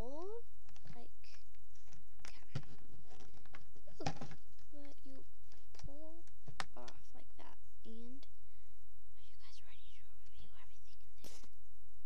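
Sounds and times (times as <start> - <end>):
low hum: 0.0 - 12.0
girl whispering: 2.2 - 2.6, 5.8 - 8.3, 9.2 - 11.5.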